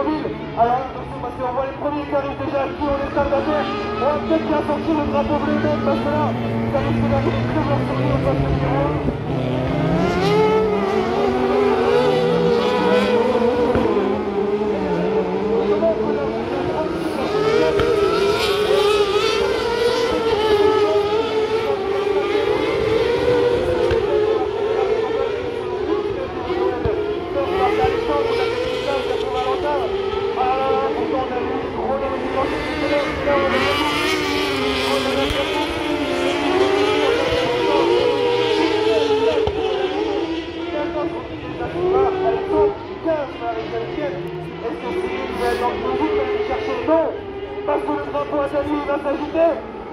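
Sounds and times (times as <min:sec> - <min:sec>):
buggy engines racing: 0:00.0 - 0:49.9.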